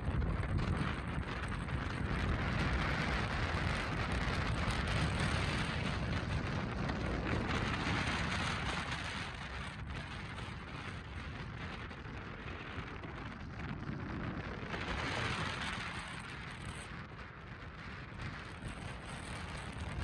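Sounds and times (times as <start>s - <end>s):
wind noise around car: 0.0s - 20.0s.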